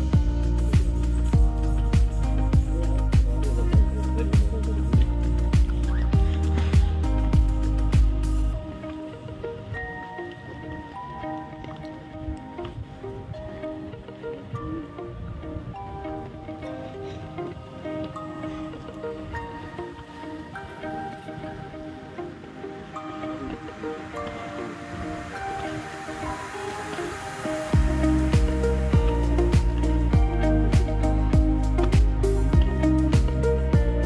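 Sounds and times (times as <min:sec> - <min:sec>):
heavy bass and drum beat: 0:00.0 - 0:08.6, 0:27.8 - 0:34.0
soft melodic music: 0:00.0 - 0:34.0.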